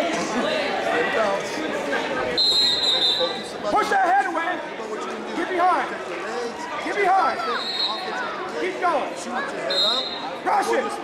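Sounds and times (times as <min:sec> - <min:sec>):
murmur of background chatter: 0:00.0 - 0:11.0.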